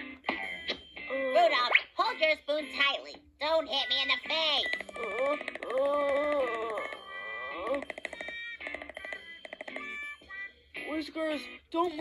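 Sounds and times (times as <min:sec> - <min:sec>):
cartoon background music: 0:00.0 - 0:12.0
cartoon character voice: 0:01.1 - 0:06.9.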